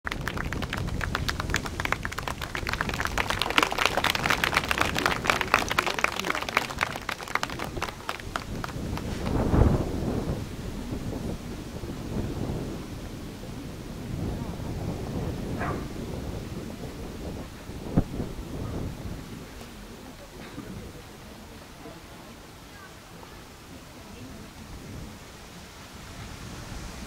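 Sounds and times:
audience applauding: 0:00.0 - 0:10.2
wind rumble on microphone: 0:00.0 - 0:27.0.

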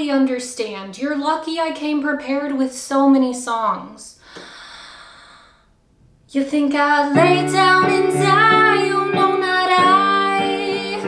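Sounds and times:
person breathing out: 0:04.2 - 0:05.7.

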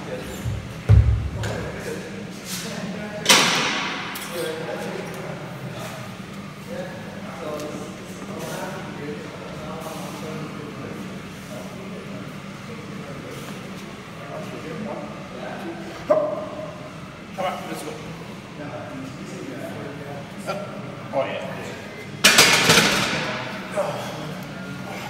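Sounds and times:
murmured chatter: 0:00.0 - 0:25.0
heavy low thud: 0:00.5 - 0:01.6.

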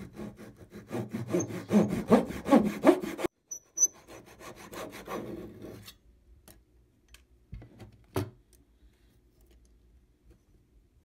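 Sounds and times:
hand saw cutting wood: 0:00.0 - 0:05.8.

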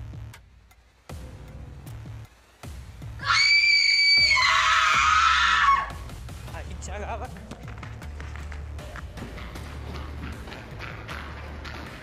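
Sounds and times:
high-pitched scream: 0:03.2 - 0:06.0.

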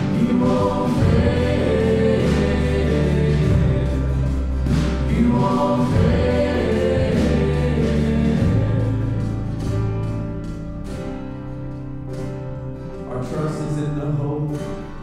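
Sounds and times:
voices singing together: 0:00.0 - 0:10.1
sustained bass notes: 0:00.0 - 0:15.0.

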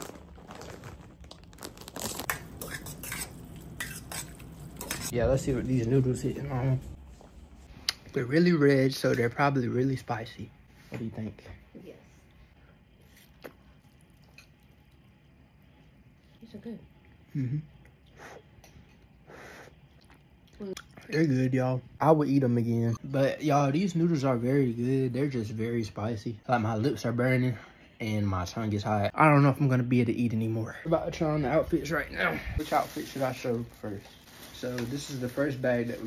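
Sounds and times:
fork clinking and scraping pan: 0:02.3 - 0:05.1.

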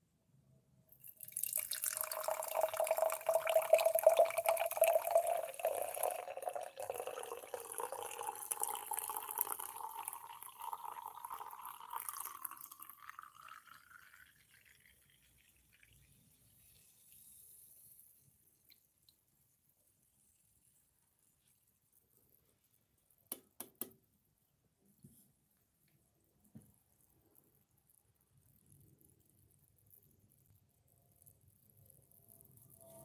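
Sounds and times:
faint fizzing: 0:00.9 - 0:20.3
fizzy drink pouring into glass: 0:01.0 - 0:19.1.

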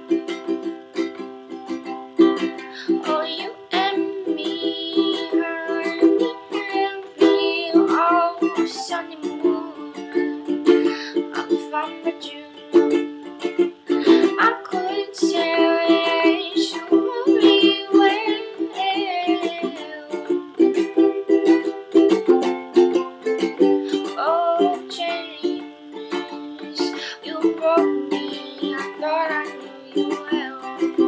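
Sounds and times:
person singing: 0:00.0 - 0:31.0
ukulele strumming: 0:00.0 - 0:31.0.

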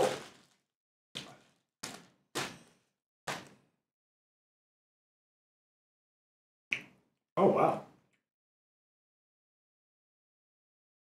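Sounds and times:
plastic bag rustling: 0:00.0 - 0:00.6.

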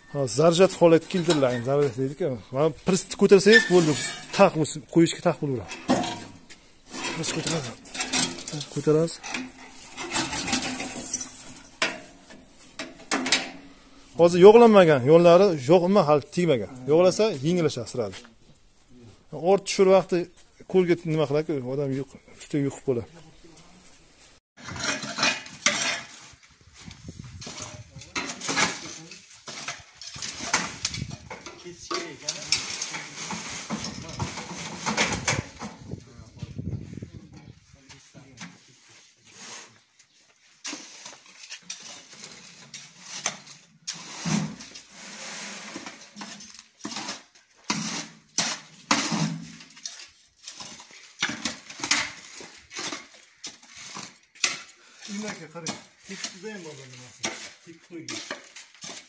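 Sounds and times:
shovels scraping on concrete: 0:00.4 - 0:02.1, 0:02.9 - 0:13.3, 0:24.6 - 0:36.0, 0:37.8 - 0:59.0.

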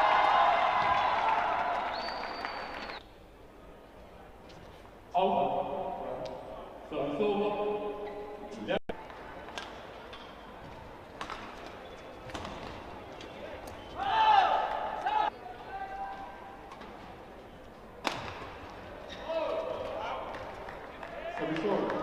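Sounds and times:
rackets hitting a shuttlecock: 0:11.2 - 0:12.9, 0:18.0 - 0:18.6
people shouting: 0:14.0 - 0:16.1.

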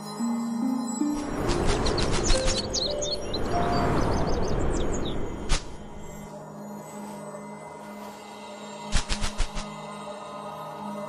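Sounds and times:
small birds chirping rapidly: 0:01.2 - 0:06.2.

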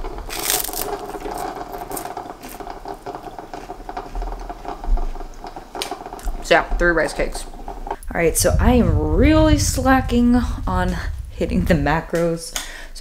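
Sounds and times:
crunchy bite into rice cake: 0:00.3 - 0:02.6
chewing with small crackles: 0:00.3 - 0:06.0.

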